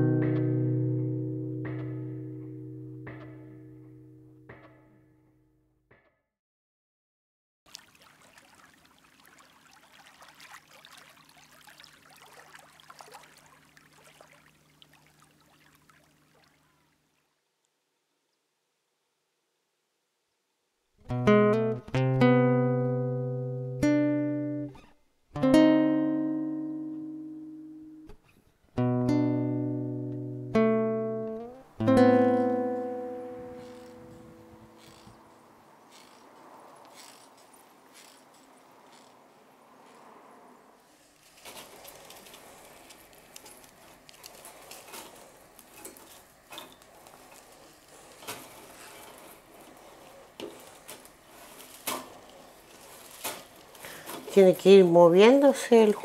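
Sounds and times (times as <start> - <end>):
plucked guitar: 0.0 - 5.5, 21.0 - 35.2.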